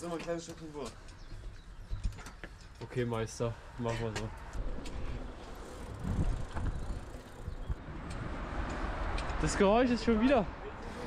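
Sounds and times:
bicycle on brick paving: 0:00.0 - 0:11.0
wind buffeting microphone: 0:04.3 - 0:09.4.

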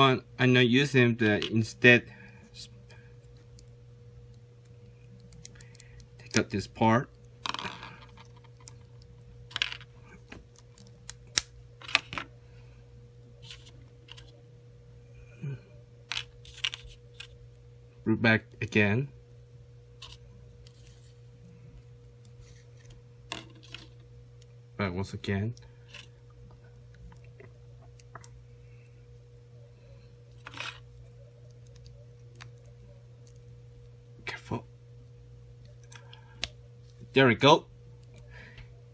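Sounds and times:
steady low hum: 0:00.0 - 0:38.9.

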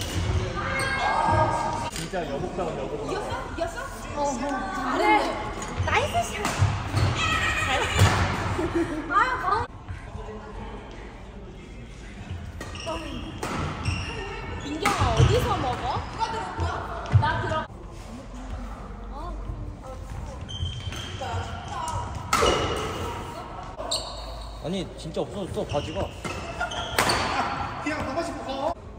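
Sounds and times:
rackets hitting shuttlecock: 0:06.4 - 0:07.2.

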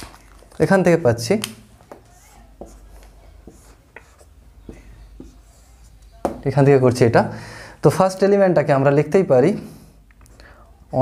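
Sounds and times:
marker drawing on a whiteboard: 0:01.6 - 0:06.9.

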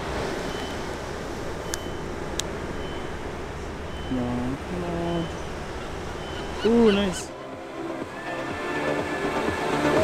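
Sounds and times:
outdoor rumble: 0:00.0 - 0:08.2
faint high beep: 0:00.5 - 0:00.8, 0:01.6 - 0:02.1, 0:02.7 - 0:03.2, 0:03.9 - 0:04.4, 0:06.2 - 0:06.6.

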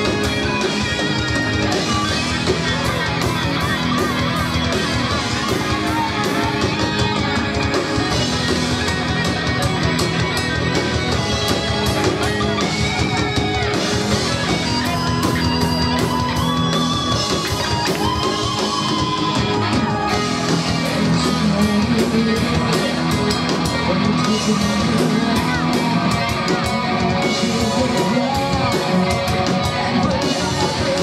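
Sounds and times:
live metal band playing: 0:00.0 - 0:31.0.

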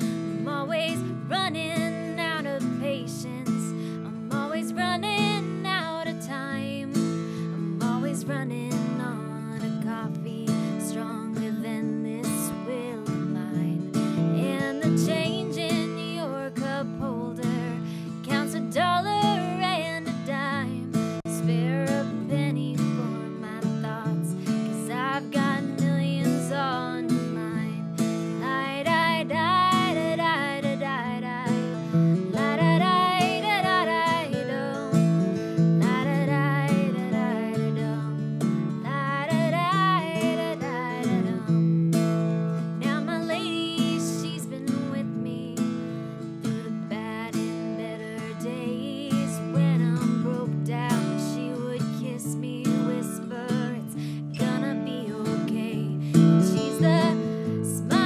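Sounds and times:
acoustic guitars playing: 0:00.0 - 0:58.0.

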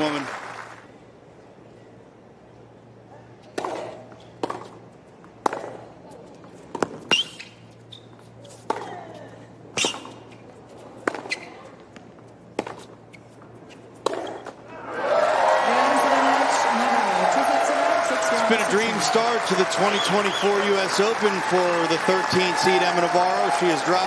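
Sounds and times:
tennis ball bouncing on court: 0:03.5 - 0:04.8, 0:05.4 - 0:05.9, 0:06.6 - 0:07.5, 0:08.2 - 0:09.2, 0:11.0 - 0:13.0, 0:13.7 - 0:14.6
tennis ball struck by rackets: 0:03.5 - 0:04.8, 0:05.4 - 0:05.9, 0:11.0 - 0:11.5, 0:12.5 - 0:12.9, 0:14.0 - 0:14.6.

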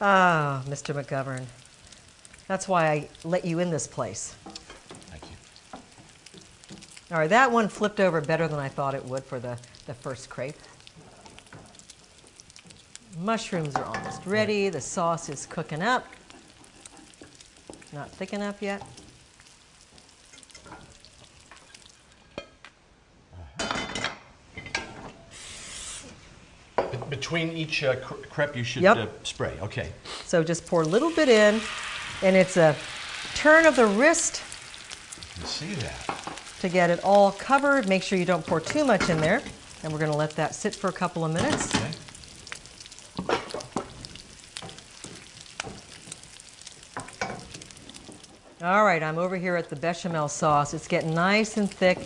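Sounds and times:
batter sizzling in frying pan: 0:00.0 - 0:22.7, 0:23.8 - 0:52.0
aerosol spray hiss: 0:25.3 - 0:26.2.

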